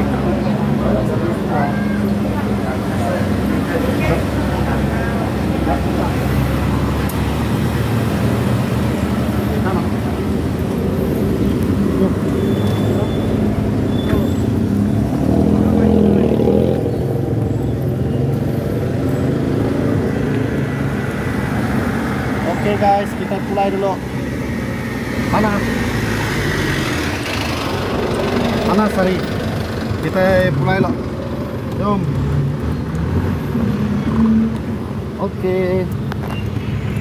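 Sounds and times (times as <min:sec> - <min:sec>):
cars on city road: 0:00.0 - 0:37.0.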